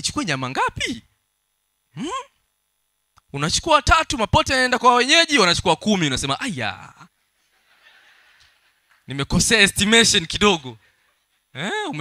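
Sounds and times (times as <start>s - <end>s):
man's questioning hmm: 2.0s - 2.4s.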